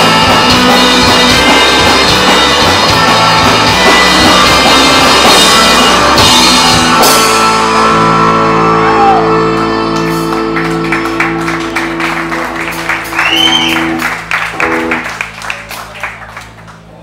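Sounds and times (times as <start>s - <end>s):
drum and cymbal hits: 0.0s - 8.0s
guitar and bass chord ringing: 0.0s - 17.0s.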